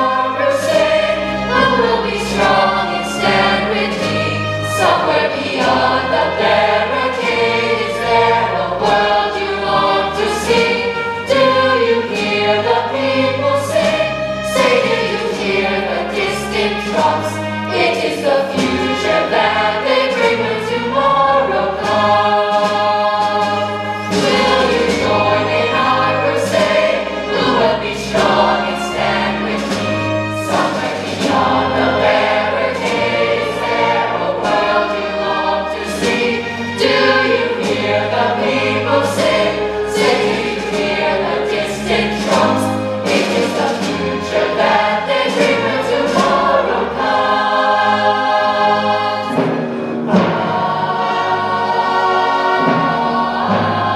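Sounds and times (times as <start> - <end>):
choir singing: 0.0 - 53.9
instrumental backing: 0.0 - 53.9.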